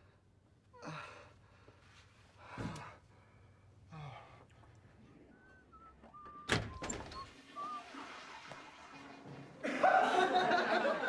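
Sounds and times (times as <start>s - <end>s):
faint short squeaks: 5.5s - 7.8s.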